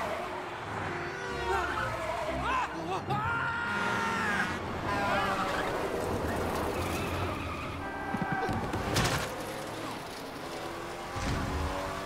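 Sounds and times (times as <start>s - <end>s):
race car tyres skidding: 3.7s - 10.3s
car engines running: 4.7s - 12.0s.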